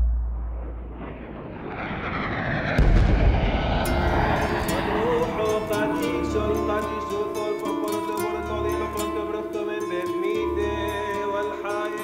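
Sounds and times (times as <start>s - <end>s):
deep boom ringing: 0.0s - 7.2s
low rumbling city background: 0.0s - 7.5s.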